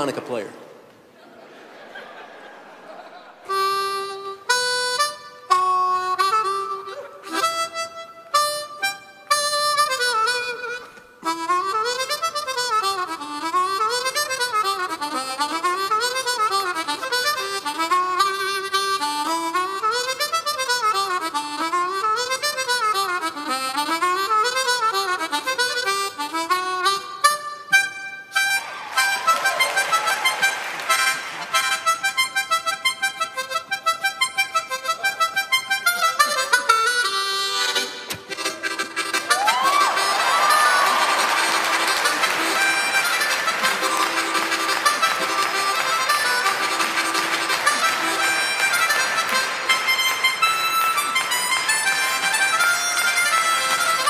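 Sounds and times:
harmonica playing: 0:03.3 - 0:54.0.

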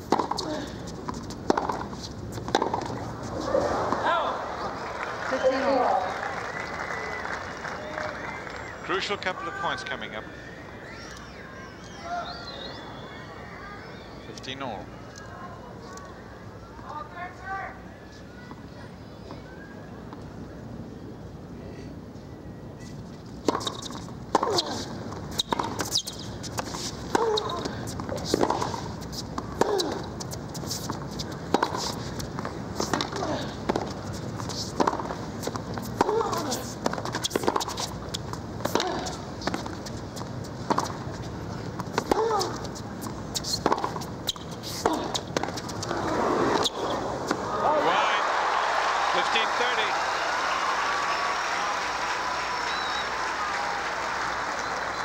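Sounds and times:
crowd applauding and cheering: 0:03.8 - 0:09.4, 0:47.4 - 0:55.0
tennis racket hits: 0:41.8 - 0:42.7.

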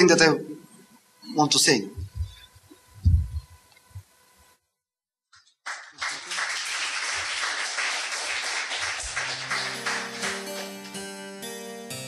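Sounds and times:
dull thumps on microphone: 0:03.0 - 0:03.5.

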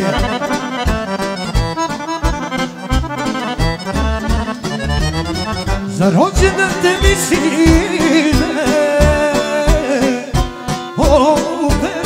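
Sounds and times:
person singing: 0:00.0 - 0:00.6, 0:05.8 - 0:12.0
accordion folk dance music: 0:00.0 - 0:12.0.

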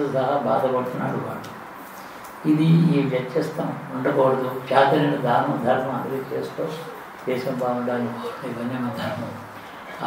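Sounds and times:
man speaking: 0:02.4 - 0:10.0.

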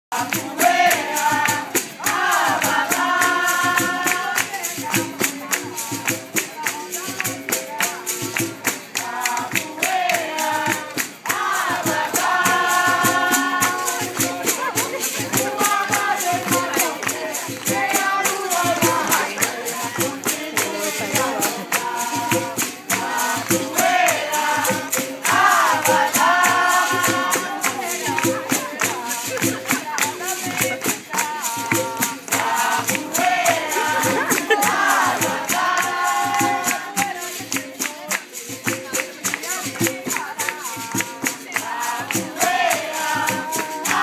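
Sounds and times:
berimbaus and tambourine beat: 0:00.1 - 0:44.0
group singing: 0:00.1 - 0:44.0.

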